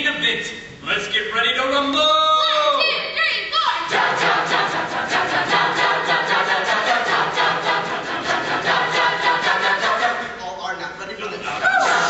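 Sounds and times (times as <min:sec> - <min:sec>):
a cappella ensemble singing: 0:03.8 - 0:10.5, 0:11.5 - 0:12.0.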